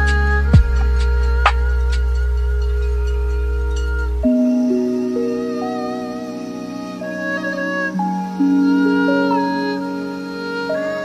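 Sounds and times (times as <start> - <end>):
low bass drone: 0.0 - 7.0.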